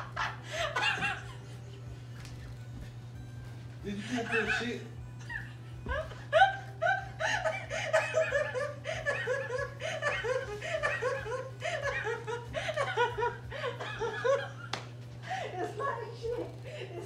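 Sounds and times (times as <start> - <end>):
woman laughing hard: 0.0 - 2.6, 3.9 - 17.0.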